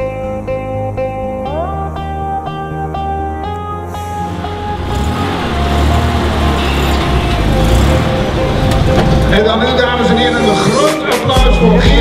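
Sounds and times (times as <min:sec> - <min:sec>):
vehicle engine rumbling: 0:03.5 - 0:10.8
faint background music: 0:04.6 - 0:12.0.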